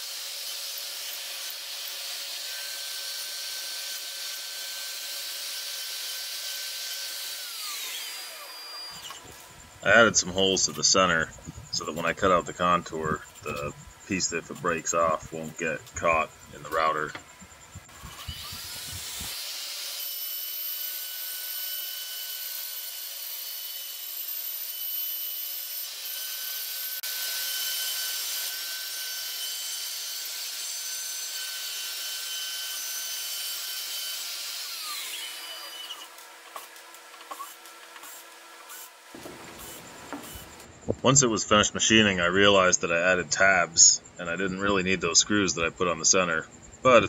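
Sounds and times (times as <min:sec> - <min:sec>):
router spindle cutting board: 0:00.0 - 0:09.3, 0:17.9 - 0:40.6.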